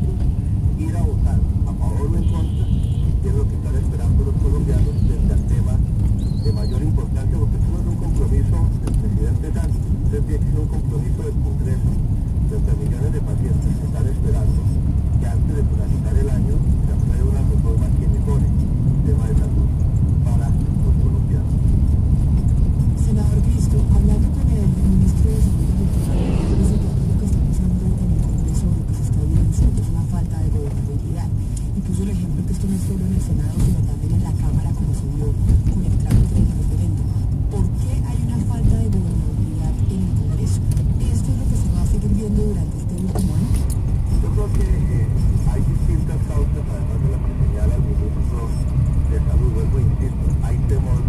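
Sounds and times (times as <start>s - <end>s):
muffled talk from radio: 0.0s - 21.8s, 22.4s - 51.0s
engine and tyre rumble: 0.0s - 51.0s.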